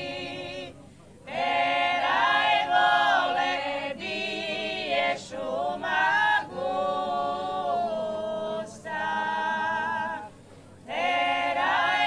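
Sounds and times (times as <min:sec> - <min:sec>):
women singing a cappella: 0:00.0 - 0:12.0
singers breathing: 0:10.3 - 0:10.9.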